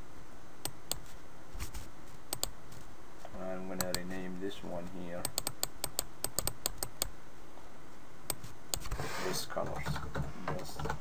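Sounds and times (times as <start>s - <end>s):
typing on computer keyboard: 5.2s - 7.1s, 9.6s - 11.0s.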